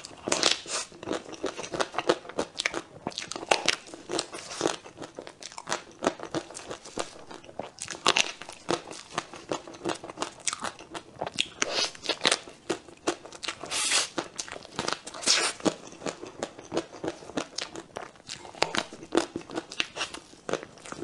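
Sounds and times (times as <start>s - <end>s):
wet chewing mouth sounds: 0.0s - 21.0s.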